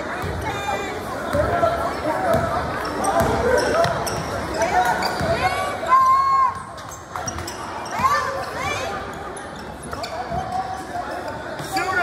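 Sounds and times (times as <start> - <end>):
sneakers squeaking on court: 2.3 - 5.7, 6.6 - 12.0.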